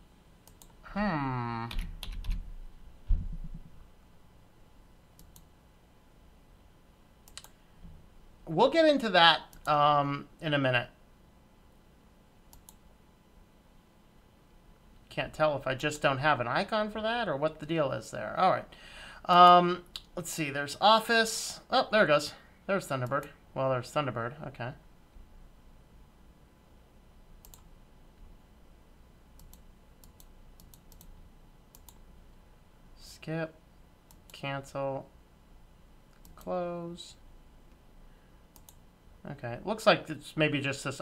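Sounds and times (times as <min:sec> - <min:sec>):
low room hum: 0:00.0 - 0:41.0
computer mouse clicks: 0:00.4 - 0:00.8, 0:05.2 - 0:05.5, 0:07.2 - 0:07.6, 0:12.5 - 0:12.8, 0:27.4 - 0:27.7, 0:29.4 - 0:32.0, 0:34.1 - 0:34.4, 0:36.1 - 0:36.5, 0:38.5 - 0:38.8.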